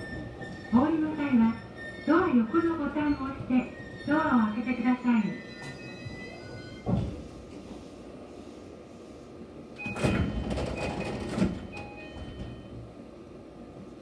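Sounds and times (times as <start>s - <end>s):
sliding train doors opening: 0.0s - 3.6s, 5.4s - 8.3s, 9.6s - 13.0s.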